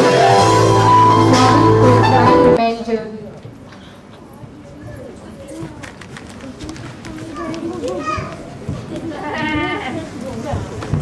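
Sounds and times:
murmur of people: 0:00.0 - 0:11.0
children chattering and calling out: 0:02.6 - 0:11.0.

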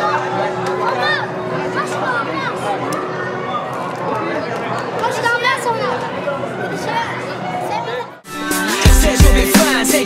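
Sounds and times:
music with steady bass beat: 0:08.3 - 0:10.0.

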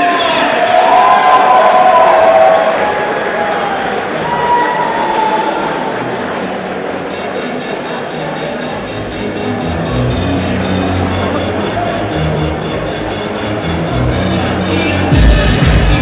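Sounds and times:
crowd cheering and shouting: 0:00.0 - 0:08.7, 0:09.6 - 0:16.0.

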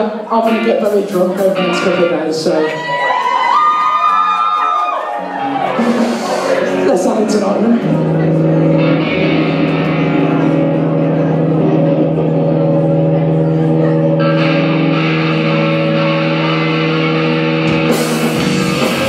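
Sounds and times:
rock band playing: 0:00.0 - 0:19.0
distorted electric guitar chord: 0:05.5 - 0:19.0.

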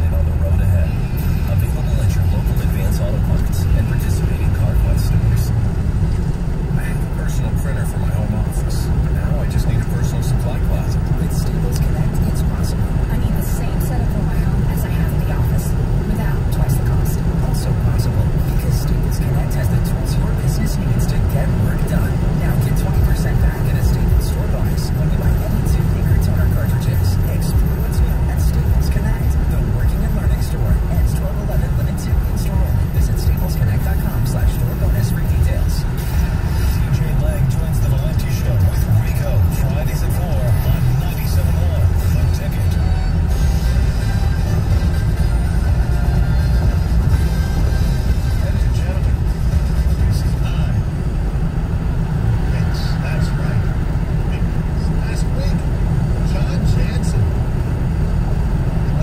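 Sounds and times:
car radio playing: 0:00.0 - 0:59.0
car road and engine rumble: 0:00.0 - 0:59.0.

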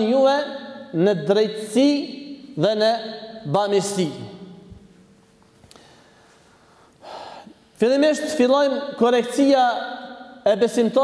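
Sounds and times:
man speaking: 0:00.0 - 0:04.7, 0:07.8 - 0:11.0
man breathing in: 0:05.7 - 0:07.6.

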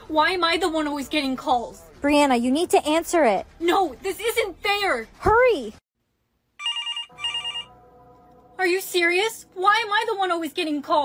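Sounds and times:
telephone ringing: 0:06.6 - 0:07.8.

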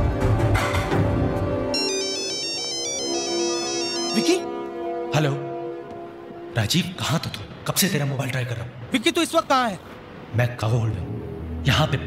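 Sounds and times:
film score music: 0:00.0 - 0:12.0
phone ringtone beeping melody: 0:01.8 - 0:04.5
person speaking: 0:04.0 - 0:04.5.

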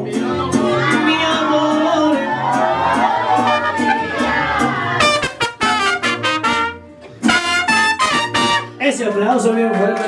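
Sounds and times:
strummed guitars: 0:00.0 - 0:10.0
trumpets playing punchy notes: 0:03.4 - 0:04.2, 0:05.0 - 0:08.8.

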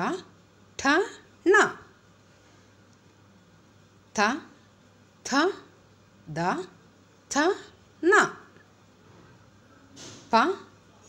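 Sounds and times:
person saying a syllable: 0:00.0 - 0:01.9
faint low hum: 0:00.0 - 0:11.0.

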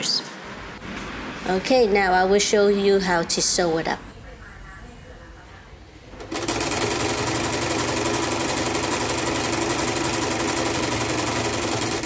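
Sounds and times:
sewing machine running: 0:06.2 - 0:12.0.

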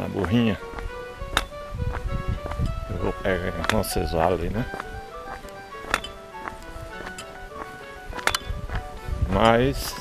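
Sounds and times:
melody of short notes: 0:00.0 - 0:10.0
sharp knocks: 0:00.7 - 0:02.7, 0:05.8 - 0:07.4.

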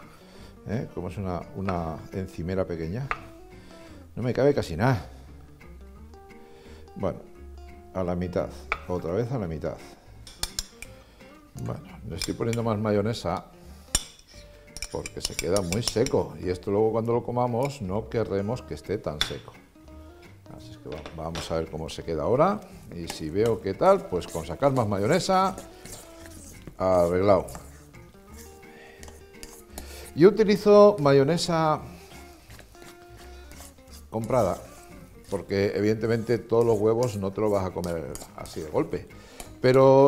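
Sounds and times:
acoustic guitar music: 0:00.0 - 0:40.0
cutlery clinking on a dish: 0:10.3 - 0:10.9, 0:13.9 - 0:16.2
metal spoon scraping a steel bowl: 0:12.2 - 0:12.7, 0:13.8 - 0:16.2, 0:23.0 - 0:30.0, 0:32.1 - 0:39.6.

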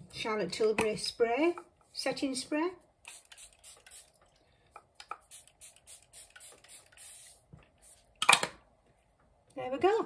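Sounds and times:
spray bottle spritzing: 0:03.0 - 0:04.2, 0:05.0 - 0:08.0.

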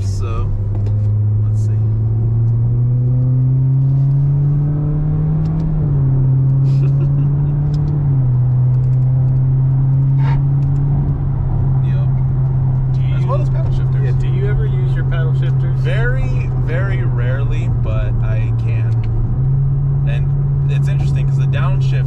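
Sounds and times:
car engine accelerating and upshifting: 0:00.0 - 0:22.0.

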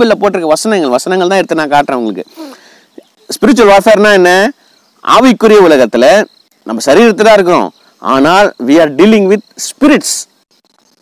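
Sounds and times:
man talking: 0:00.0 - 0:02.5, 0:03.2 - 0:10.3
cricket trill: 0:00.1 - 0:11.0.

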